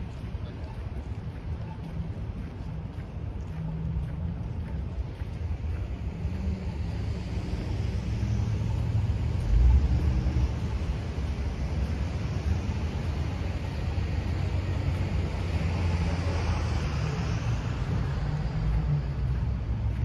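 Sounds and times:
low uneven street rumble: 0.0 - 20.0.

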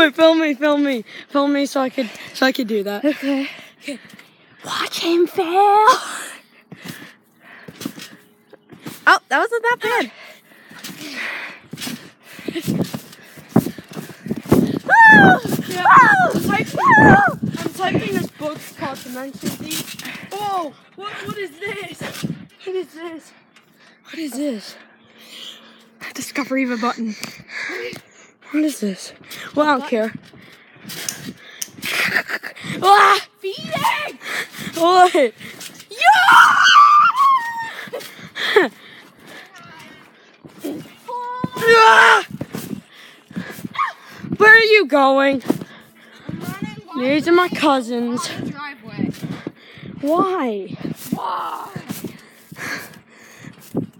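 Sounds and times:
trampoline thuds and squeaks: 12.6 - 23.2, 40.5 - 42.9
person shouting: 14.9 - 17.4, 35.9 - 37.7.

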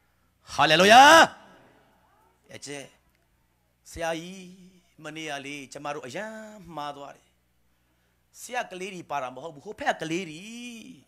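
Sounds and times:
man speaking: 0.5 - 1.4.

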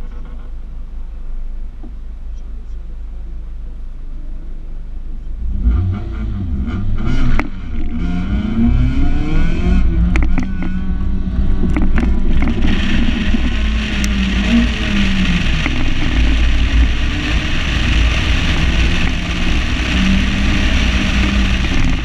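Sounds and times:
car engine accelerating hard: 5.3 - 22.0.

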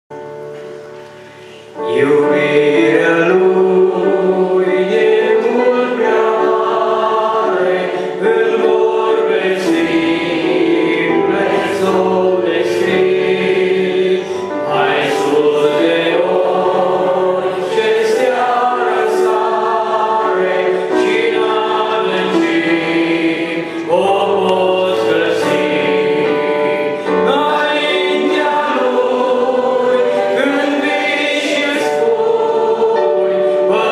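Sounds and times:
instrumental accompaniment: 0.1 - 33.9
man singing into microphone: 23.8 - 28.9.

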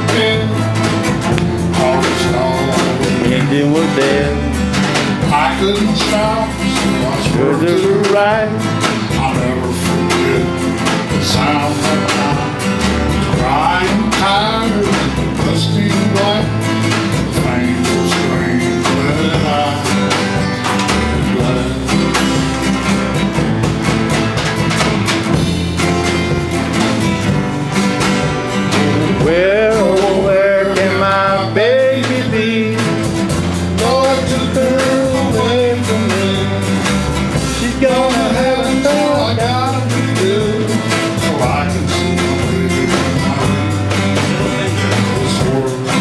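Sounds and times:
person singing: 0.0 - 4.6, 5.2 - 22.4, 28.7 - 46.0
drums: 0.0 - 46.0
electric bass: 0.0 - 46.0
strummed acoustic guitars: 0.0 - 46.0.

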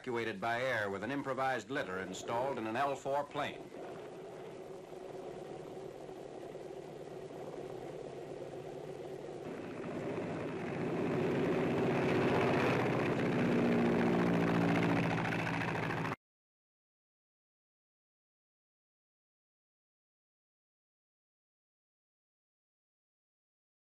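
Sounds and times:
plane piston engine running: 1.6 - 16.2.

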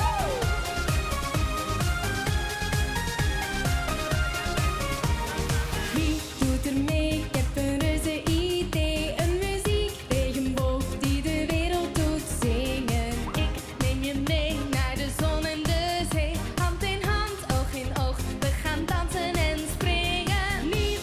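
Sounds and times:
pop backing track with beat: 0.0 - 21.0
woman singing into microphone: 6.0 - 21.0.

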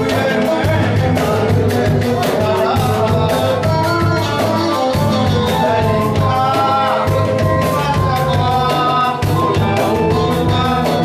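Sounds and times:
band playing melodic music: 0.0 - 11.0.

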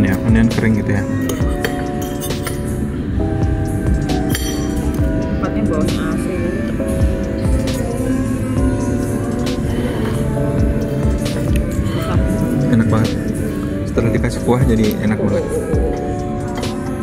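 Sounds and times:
background music with held notes: 0.0 - 17.0
fork and knife clinking on plate: 1.3 - 2.7.

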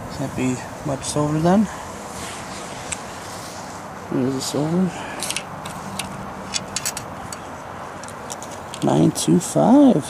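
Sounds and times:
background hiss: 0.0 - 10.0.

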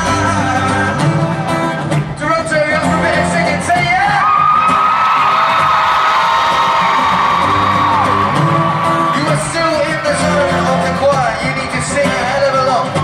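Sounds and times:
live pop band: 0.0 - 13.0
crowd whooping: 3.8 - 13.0.

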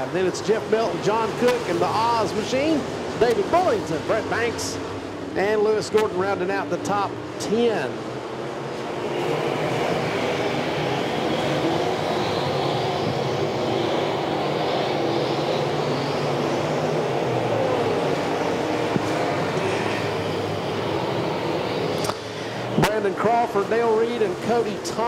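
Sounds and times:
race car engines droning: 0.0 - 25.0.

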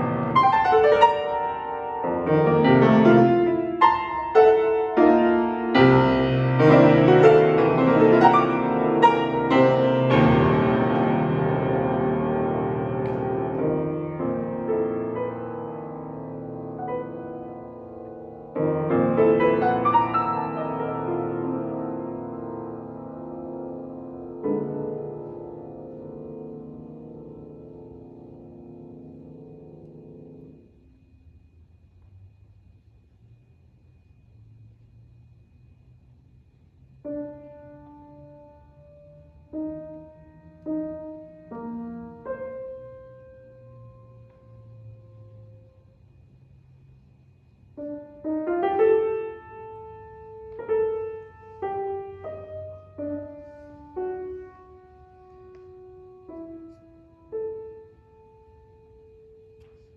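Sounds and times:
solo grand piano: 0.0 - 59.9.

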